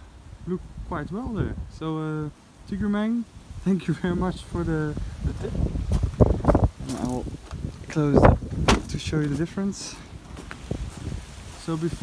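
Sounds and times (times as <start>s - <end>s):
wind buffeting microphone: 0.0s - 12.0s
footsteps on gravel: 5.3s - 12.0s.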